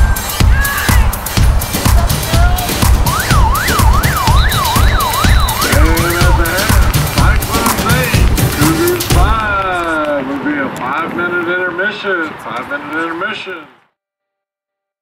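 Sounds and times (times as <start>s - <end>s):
dance music with heavy beat: 0.0s - 9.7s
announcer speaking: 2.0s - 13.8s
siren-like warble: 3.0s - 6.4s.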